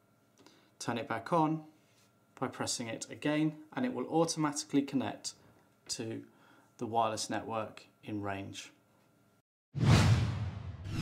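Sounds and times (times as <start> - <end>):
whoosh sound effect: 9.8 - 11.0.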